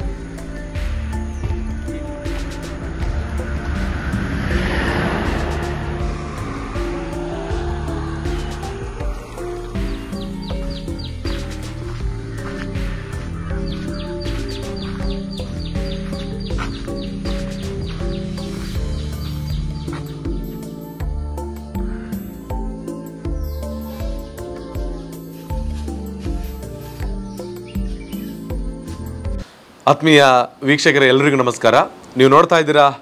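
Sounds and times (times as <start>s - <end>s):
regular beat: 0.7s - 19.0s
stepped note melody: 1.4s - 18.9s.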